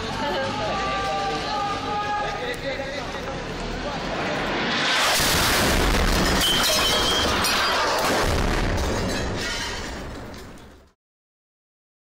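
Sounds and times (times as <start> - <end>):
explosion: 3.8 - 10.9
rushing noise of incoming strike: 4.0 - 7.6.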